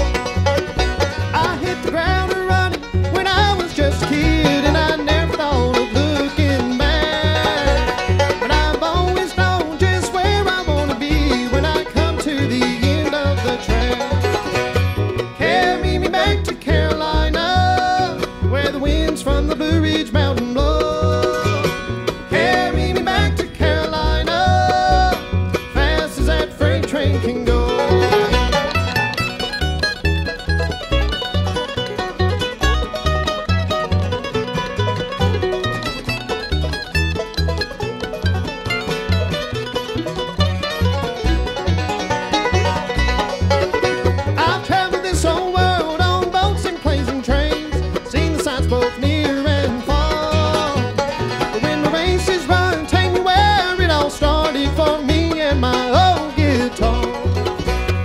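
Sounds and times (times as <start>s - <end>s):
acoustic guitar: 0.0s - 58.0s
banjo: 0.0s - 58.0s
mandolin: 0.0s - 58.0s
upright bass plucking: 0.0s - 58.0s.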